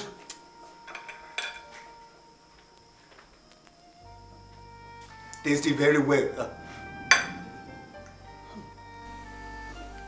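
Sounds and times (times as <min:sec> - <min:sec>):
plates and cutlery clinking: 0:00.0 - 0:02.0, 0:07.0 - 0:08.7.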